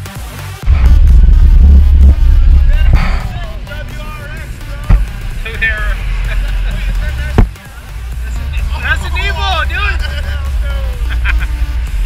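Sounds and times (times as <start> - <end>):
car engine and exhaust rumble: 0.4 - 12.0
people's voices: 1.8 - 12.0
sharp knock: 2.8 - 3.4.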